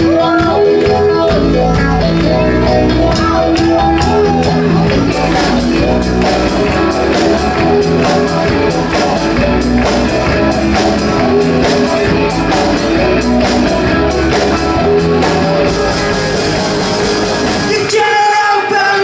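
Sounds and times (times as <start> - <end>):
rock band playing: 0.0 - 19.0.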